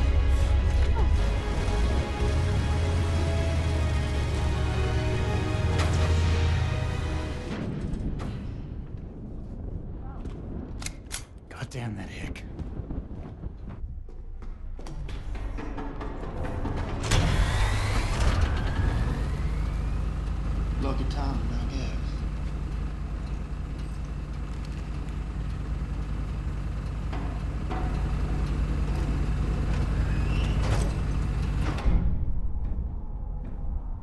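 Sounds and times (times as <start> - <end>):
steady low rumble: 0.0 - 34.0
scattered knocks: 27.0 - 29.9.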